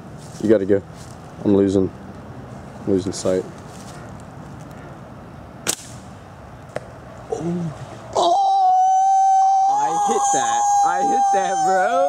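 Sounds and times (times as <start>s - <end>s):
slingshot bands snapping: 5.7s - 6.0s.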